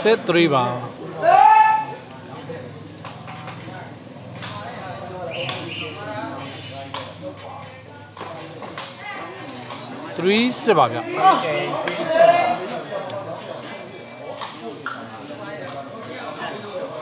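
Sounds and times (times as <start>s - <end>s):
crowd murmuring: 0.0s - 17.0s.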